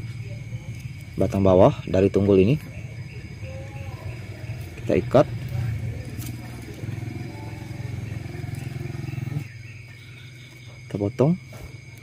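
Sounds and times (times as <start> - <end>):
high-pitched insect trill: 0.0 - 12.0
low pulsing animal call: 1.9 - 10.8.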